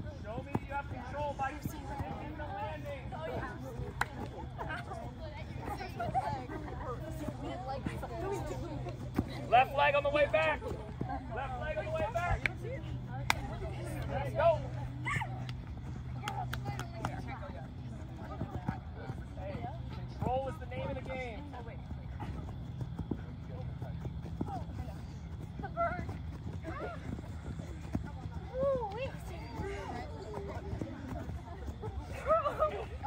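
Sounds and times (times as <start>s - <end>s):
steady low hum: 0.0s - 33.0s
girls chattering: 1.2s - 20.3s, 21.4s - 33.0s.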